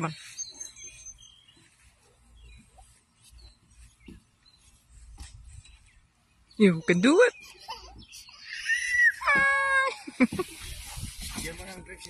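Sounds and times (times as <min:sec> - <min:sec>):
child squealing: 0:07.7 - 0:10.0
faint rustling: 0:09.3 - 0:12.0.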